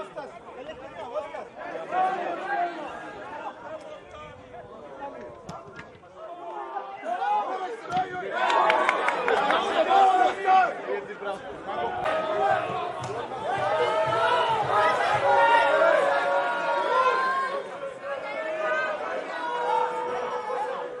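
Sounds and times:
people calling out and chattering: 0.0 - 21.0.

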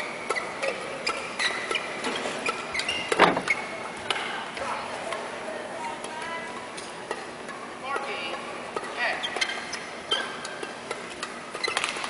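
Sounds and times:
shoe squeaks: 0.0 - 3.9, 8.8 - 12.0.

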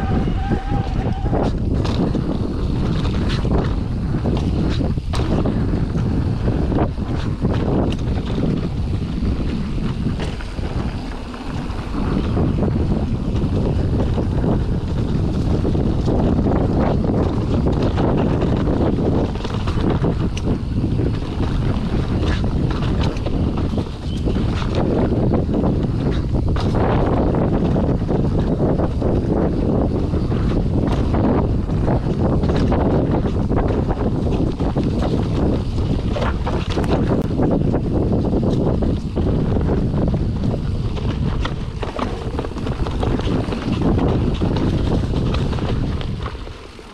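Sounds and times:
bike rattling and knocking: 0.0 - 46.9
tyre rumble on dirt trail: 0.0 - 46.9
wind on microphone: 0.0 - 46.9.

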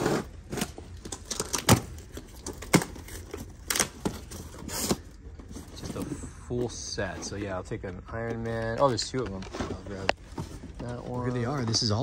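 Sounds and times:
cardboard rustling and tearing: 0.0 - 12.0.

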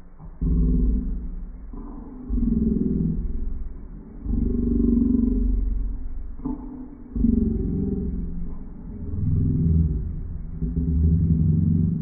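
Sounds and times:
deep growling voice-like sounds: 0.3 - 12.0.

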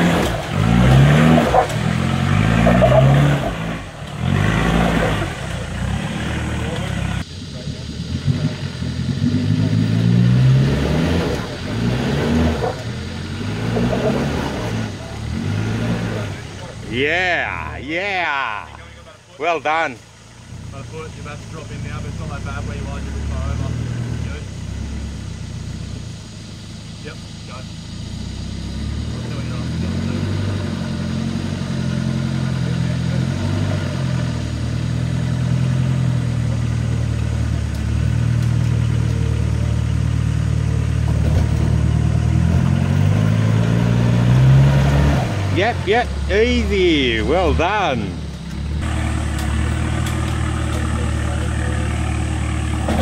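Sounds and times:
diesel engine labouring: 0.0 - 53.0.

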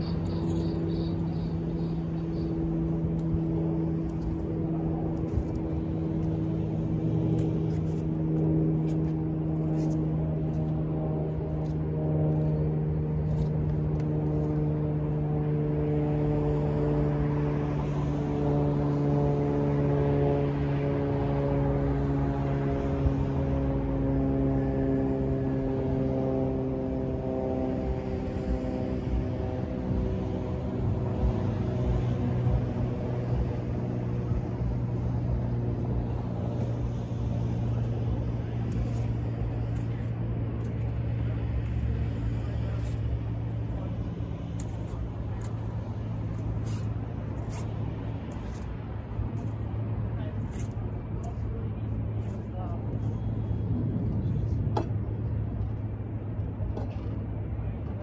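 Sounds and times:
low droning engine hum: 0.0 - 58.0.

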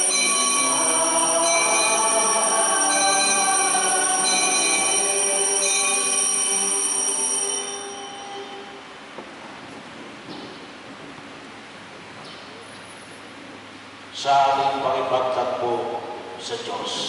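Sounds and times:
bells ringing: 0.0 - 9.1.

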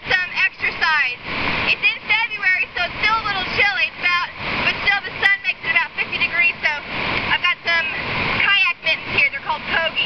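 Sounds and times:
river water rushing: 0.0 - 10.0
woman talking: 0.0 - 10.0.

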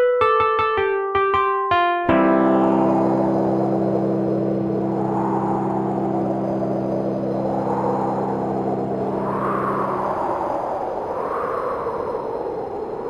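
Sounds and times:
low electronic chord: 0.7 - 9.2
noisy electronic wash: 2.1 - 12.1.

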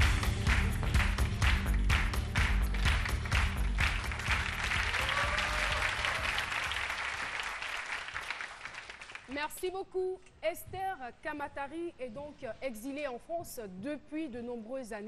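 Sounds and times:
upbeat music with heavy bass: 0.0 - 4.9
audience applauding: 0.0 - 9.4.

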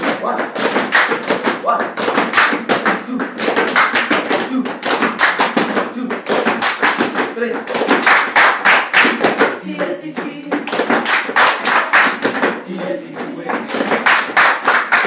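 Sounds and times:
people clapping: 0.0 - 15.0.

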